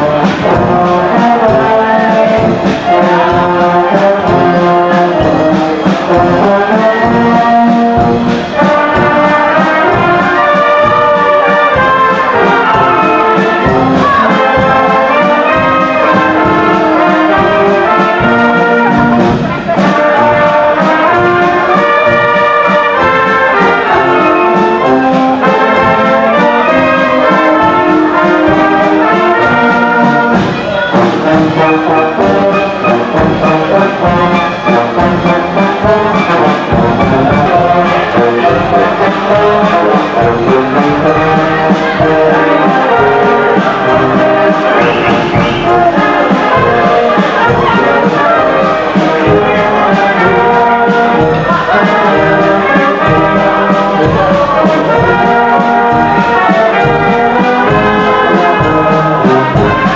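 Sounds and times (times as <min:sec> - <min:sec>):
brass band playing: 0:00.0 - 0:59.9.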